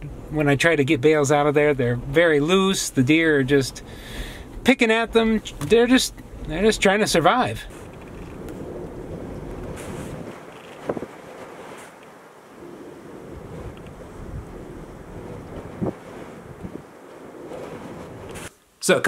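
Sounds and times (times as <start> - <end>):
strong wind buffeting microphone: 0.0 - 18.5.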